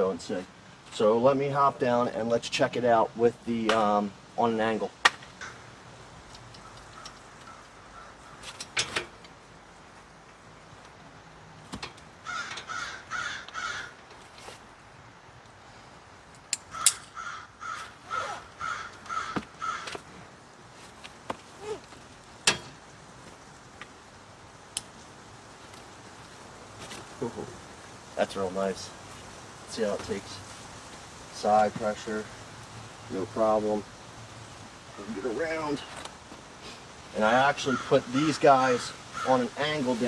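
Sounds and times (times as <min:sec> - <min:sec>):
bird cawing: 0:05.4 - 0:05.8, 0:06.5 - 0:08.7, 0:12.2 - 0:14.3, 0:16.6 - 0:20.2, 0:37.5 - 0:39.8.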